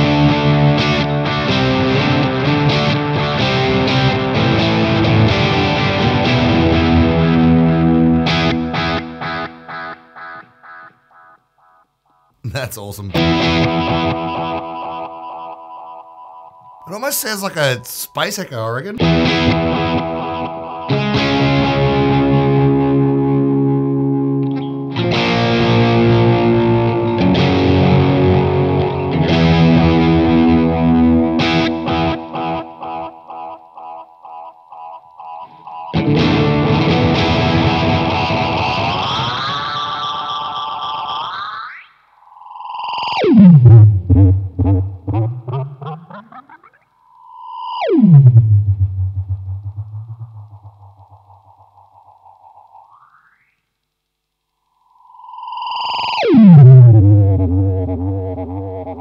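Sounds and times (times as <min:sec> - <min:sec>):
distorted electric guitar chords: 0:00.0 - 0:17.0, 0:19.0 - 0:41.8, 0:42.5 - 0:53.6, 0:54.3 - 0:59.0
delay repeats bending in pitch: 0:42.4 - 0:53.5, 0:54.8 - 0:59.0.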